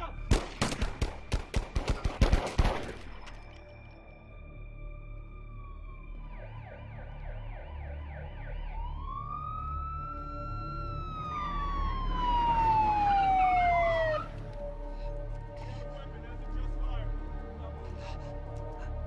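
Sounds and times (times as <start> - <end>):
police siren wailing: 4.4 - 15.2.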